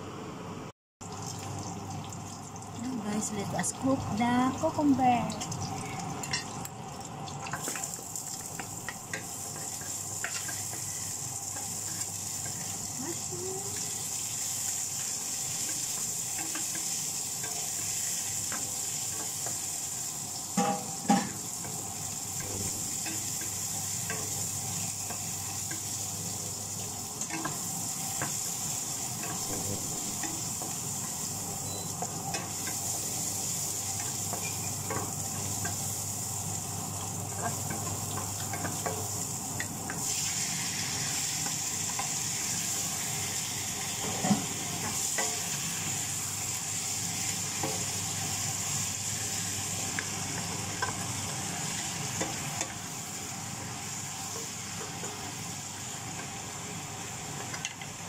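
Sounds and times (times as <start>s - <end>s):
food sizzling in a pan: 1.0s - 58.0s.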